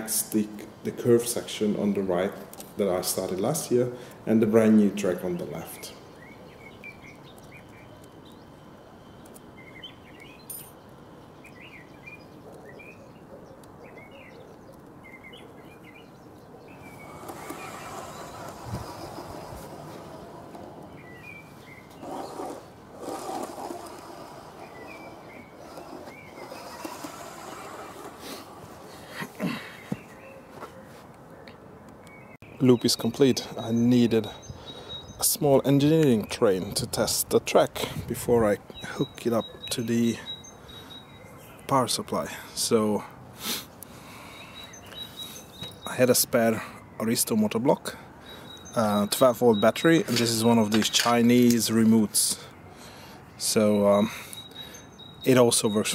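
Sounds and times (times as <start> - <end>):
small birds chirping: 0.0 - 55.9
toy train wagon rolling on track: 17.0 - 20.9, 22.0 - 28.9.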